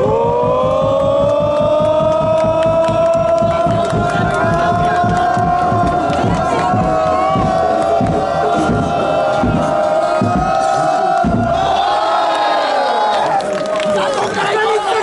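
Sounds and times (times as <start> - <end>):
quick rhythmic beat: 0.0 - 11.9
crowd chanting: 0.0 - 15.0.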